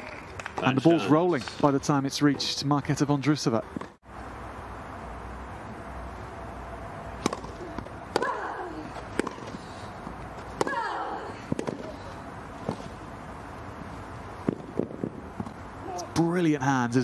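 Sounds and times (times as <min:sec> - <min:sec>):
tennis racket hitting ball: 0:07.2 - 0:09.7, 0:10.4 - 0:12.0.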